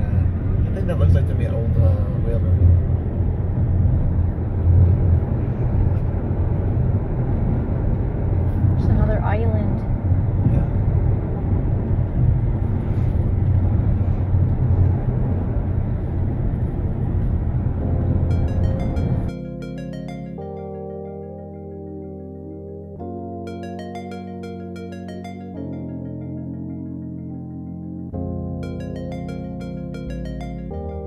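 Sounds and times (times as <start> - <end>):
mallet percussion music: 18.3 - 21.1, 23.5 - 26.9, 28.6 - 31.0.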